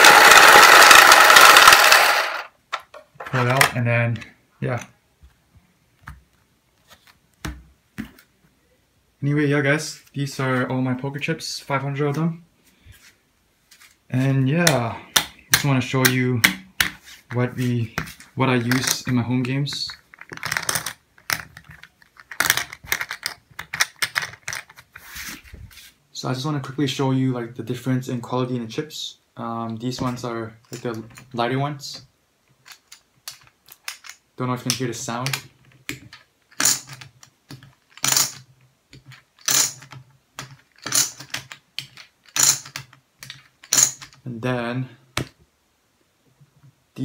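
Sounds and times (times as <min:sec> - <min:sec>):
poker chips clicking: 0:00.0 - 0:02.5, 0:19.9 - 0:24.8
poker chips clattering onto stack: 0:00.0 - 0:03.8, 0:18.0 - 0:24.8, 0:32.6 - 0:44.2.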